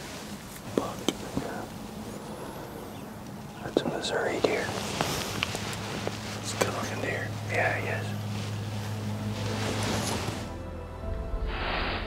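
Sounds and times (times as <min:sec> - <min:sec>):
low hum: 0:00.0 - 0:12.0
soft background music: 0:03.2 - 0:12.0
rushing swell: 0:07.8 - 0:12.0
hiss: 0:11.4 - 0:12.0.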